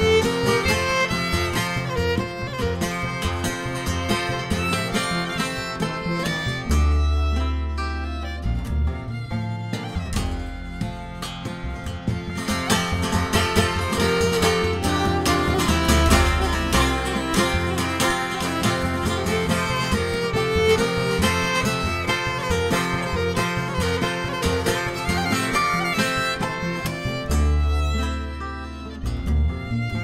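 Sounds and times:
acoustic guitar accompaniment: 0.0 - 30.0
fiddle melody: 0.0 - 30.0.

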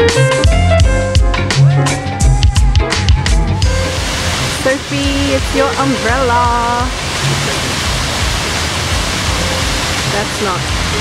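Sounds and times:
water rushing down rocks: 3.6 - 11.0.

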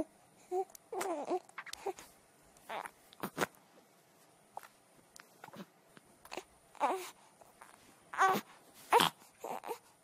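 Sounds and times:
baby-like crying: 0.0 - 2.0, 8.1 - 9.9.

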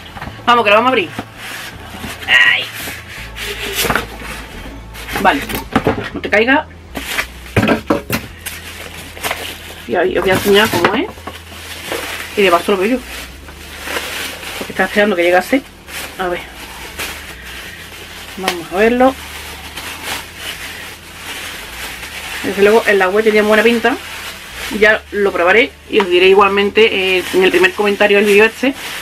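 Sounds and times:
plastic bag rustling: 0.0 - 29.0
plastic wrapping crinkling: 6.9 - 29.0.

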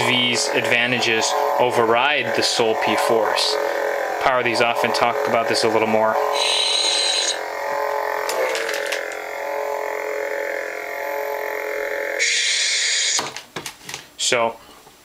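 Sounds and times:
hissing power-down effect: 0.0 - 13.4
electronic lightsaber hum: 0.0 - 13.5.

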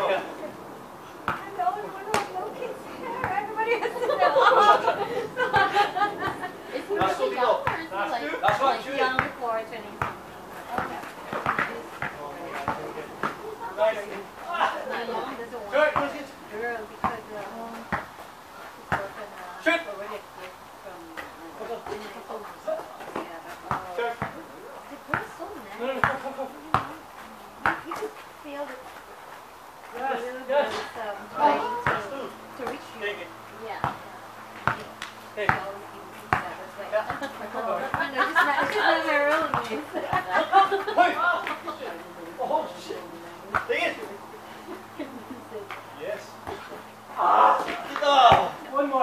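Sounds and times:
basketball bouncing: 1.2 - 2.4, 7.0 - 9.4, 10.0 - 13.4, 15.9 - 16.2, 17.0 - 18.1, 23.6 - 24.4, 25.1 - 27.0, 27.6 - 28.1, 31.8 - 32.1, 33.8 - 37.3, 39.3 - 40.3, 47.7 - 48.6
players shouting: 47.1 - 48.6.

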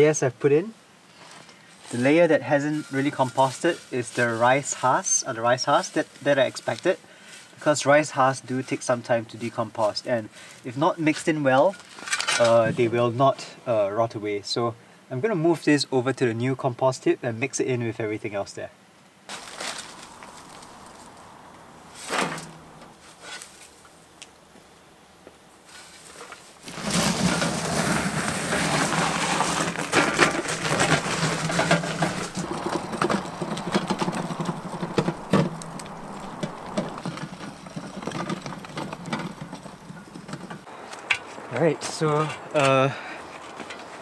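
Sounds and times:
wheelbarrow rolling over gravel: 1.1 - 13.4, 19.3 - 23.9, 25.6 - 44.0
knocks and scrapes: 1.2 - 5.1, 19.3 - 21.3, 21.9 - 23.9, 25.6 - 42.4.

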